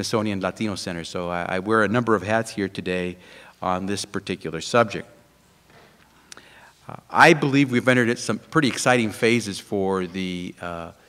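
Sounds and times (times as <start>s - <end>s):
man speaking: 0.0s - 5.2s, 6.9s - 11.0s
man breathing: 3.2s - 3.6s, 5.7s - 6.9s.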